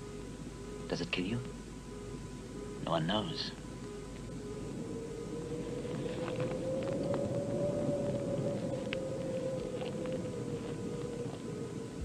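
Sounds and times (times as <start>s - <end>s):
eerie sustained drone tone: 0.0s - 12.0s
steady wind-like rumble: 0.0s - 12.0s.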